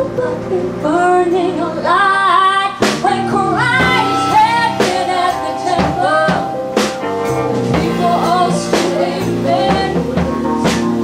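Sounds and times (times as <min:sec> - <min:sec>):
woman singing with band: 0:00.0 - 0:11.0.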